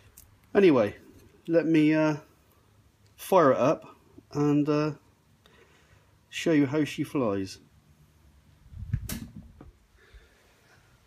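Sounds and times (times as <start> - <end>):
sharp click: 9.0 - 9.4.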